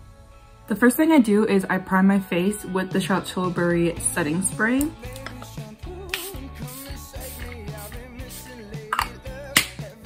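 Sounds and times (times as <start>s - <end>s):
background music melody and bass: 0.0s - 10.0s
snapping percussion strokes: 4.8s - 10.0s.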